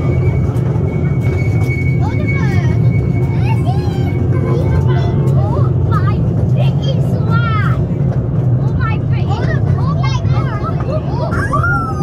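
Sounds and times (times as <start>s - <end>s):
miniature train rumbling on track: 0.0s - 12.0s
voices: 1.9s - 12.0s.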